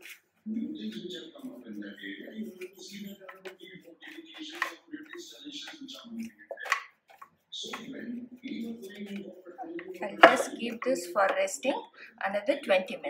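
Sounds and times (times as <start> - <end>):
hands pressing dough in metal tray: 0.0 - 11.6
voices talking: 7.6 - 13.0.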